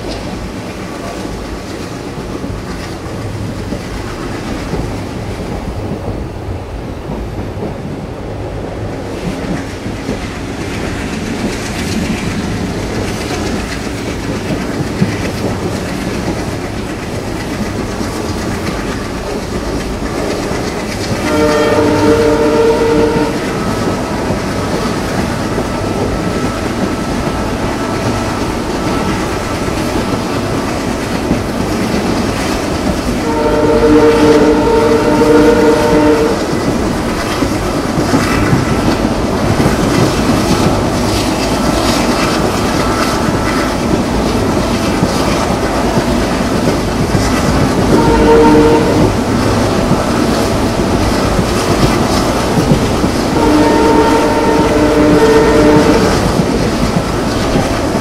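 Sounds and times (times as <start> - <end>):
train wheels clattering over rails: 0.0 - 58.0
locomotive horn chord: 21.2 - 23.4, 33.2 - 36.4, 47.9 - 49.1, 53.4 - 56.2.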